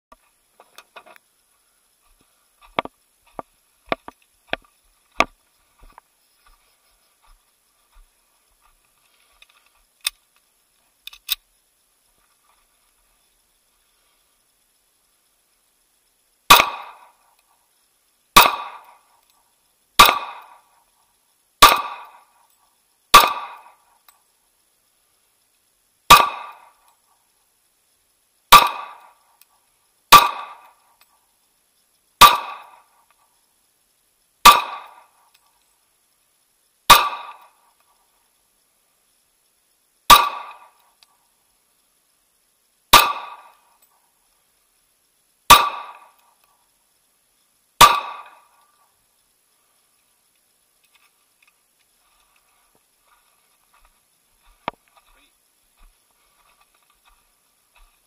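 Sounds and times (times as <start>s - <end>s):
pistol shots: 16.5s - 17.2s, 18.4s - 19.0s, 20.0s - 20.7s, 21.6s - 22.3s, 23.1s - 23.8s, 26.1s - 26.8s, 28.5s - 29.2s, 30.1s - 30.8s, 32.2s - 32.9s, 34.4s - 35.1s, 36.9s - 37.6s, 40.1s - 40.8s, 42.9s - 43.6s, 45.5s - 46.2s, 47.8s - 48.4s.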